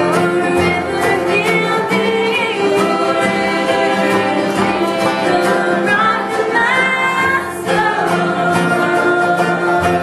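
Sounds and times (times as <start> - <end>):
backing voices: 0.0 - 10.0
woman singing: 0.0 - 10.0.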